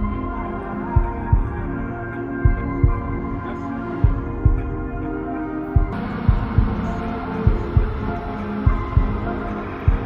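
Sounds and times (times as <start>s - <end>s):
low drone: 5.0s - 10.0s
heartbeat-like double thump: 5.8s - 10.0s.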